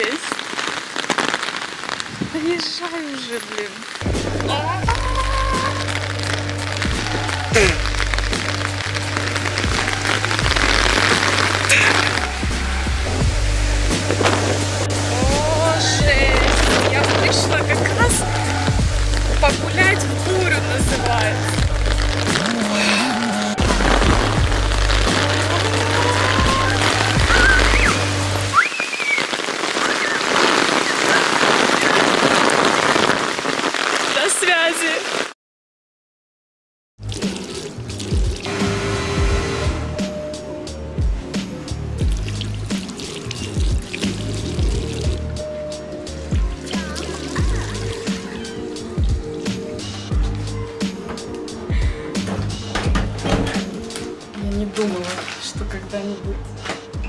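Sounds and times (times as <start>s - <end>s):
heavy rain falling: 0.0s - 35.4s, 37.0s - 57.0s
background music: 4.0s - 28.7s, 37.0s - 57.0s.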